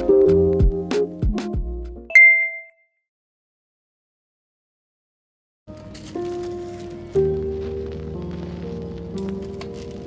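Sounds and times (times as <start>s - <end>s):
bright chime ding: 2.1s - 2.7s.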